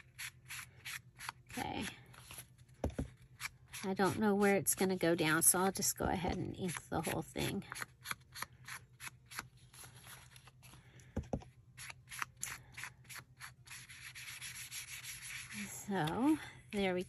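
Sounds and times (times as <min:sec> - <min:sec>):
ink blending tool rubbing paper: 0:13.1 - 0:15.8.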